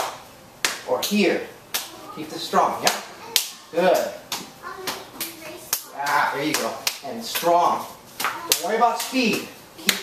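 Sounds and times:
arms slapping forearms: 0.0s - 0.9s, 1.7s - 2.0s, 2.8s - 10.0s.

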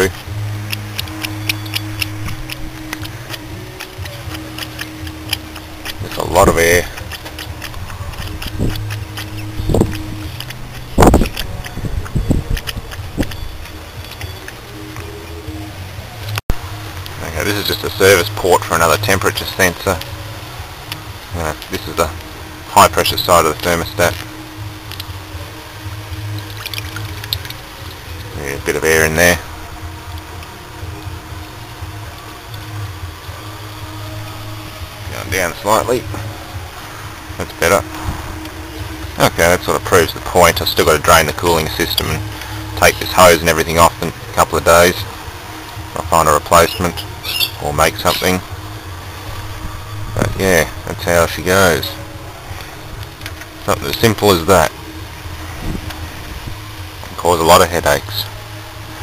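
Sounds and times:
air and coolant sputtering: 0.0s - 59.0s
steady low hum: 0.0s - 59.0s.

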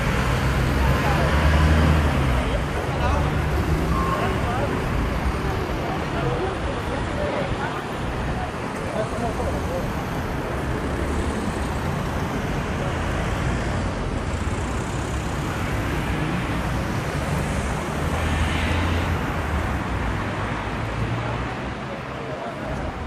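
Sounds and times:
vehicles driving past: 0.0s - 23.0s.

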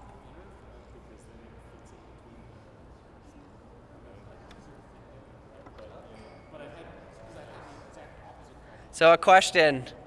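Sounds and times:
people chatting in a room: 0.0s - 10.0s.

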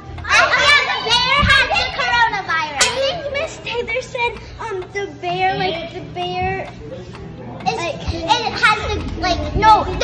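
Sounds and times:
children talking and calling out: 0.0s - 6.9s, 7.5s - 10.0s.

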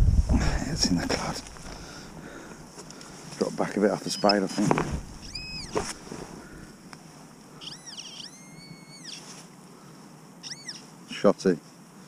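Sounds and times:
metal detector pinpointer tones: 4.0s - 4.6s, 5.2s - 5.8s, 7.6s - 9.2s.

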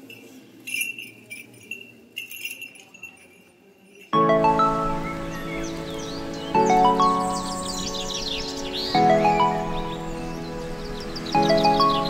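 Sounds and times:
light metallic jingles: 0.0s - 4.2s.

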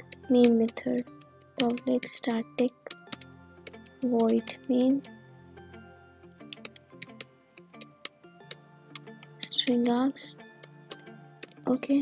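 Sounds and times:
keyboard keys clicking: 0.0s - 5.1s, 6.5s - 10.0s, 10.6s - 11.6s
quiet background music: 0.0s - 12.0s.

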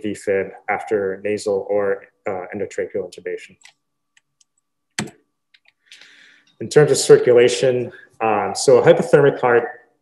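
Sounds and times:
computer keyboard click: 5.0s - 5.8s.

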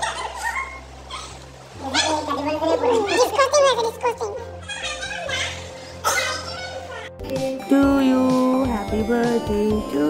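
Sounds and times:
people talking: 1.8s - 10.0s.

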